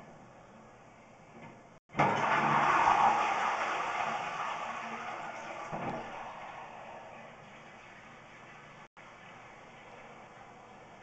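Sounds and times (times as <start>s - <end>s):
water rushing through drain pipe: 1.9s - 11.0s.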